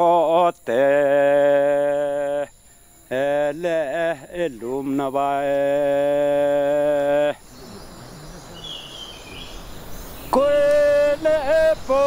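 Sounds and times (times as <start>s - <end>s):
insect chirp: 0.0s - 12.0s
low voice chanting: 0.0s - 12.0s
night forest ambience: 0.0s - 12.0s.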